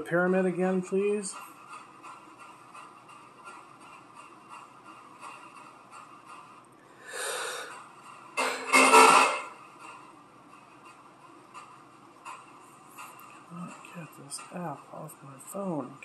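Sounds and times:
breath-like hisses: 6.9s - 7.9s.

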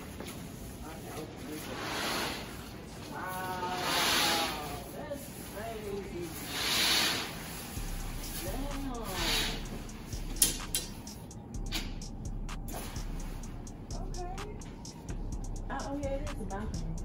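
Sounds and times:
curtain swishing along track: 0.0s - 12.0s, 12.7s - 13.7s.

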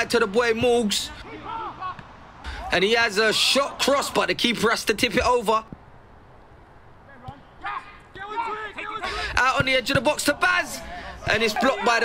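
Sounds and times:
faint outdoor background noise: 0.0s - 12.0s
faint shout: 1.2s - 3.9s.

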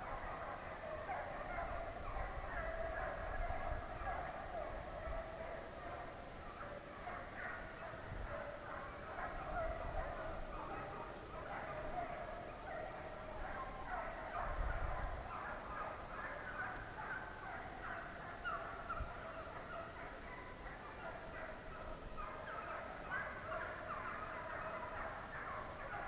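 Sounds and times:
hounds baying: 0.0s - 26.0s.

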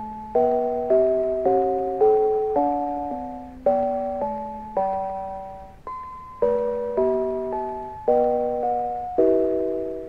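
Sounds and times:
bell chords in harmony: 0.0s - 10.0s.

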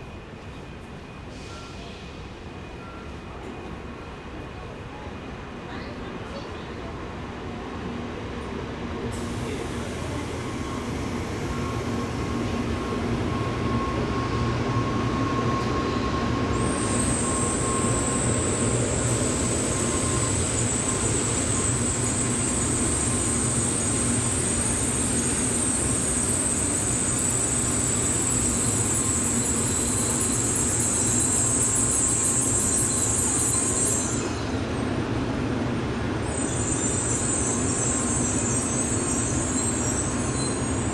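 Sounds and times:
train wheels rumbling on rail: 0.0s - 40.9s
high-pitched brake squeal: 1.3s - 2.2s, 9.2s - 34.7s, 36.3s - 40.9s.

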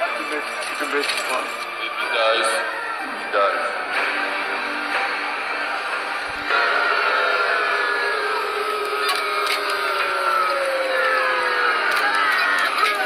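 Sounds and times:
video soundtrack through speakers: 0.0s - 13.0s.

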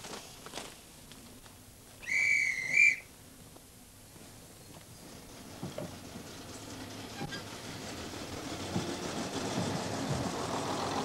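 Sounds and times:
guard's whistle blast: 2.0s - 3.1s.

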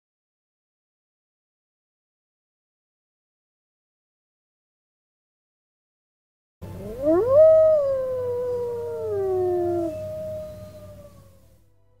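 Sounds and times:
animal howls: 6.7s - 11.4s.

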